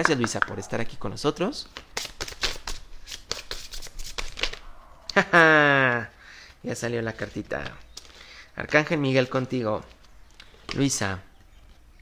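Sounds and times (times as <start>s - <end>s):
cards being shuffled: 1.6s - 4.6s.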